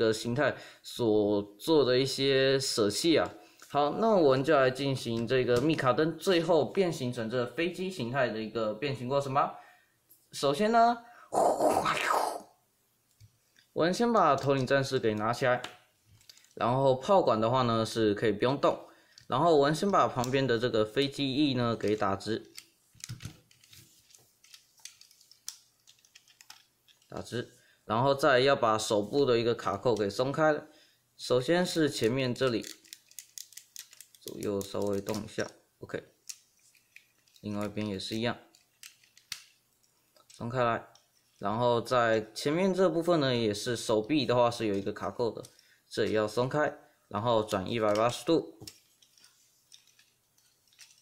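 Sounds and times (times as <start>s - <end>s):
plastic toy parts clicking: 21.8s - 27.1s, 32.0s - 35.5s, 36.2s - 41.4s, 47.8s - 51.0s.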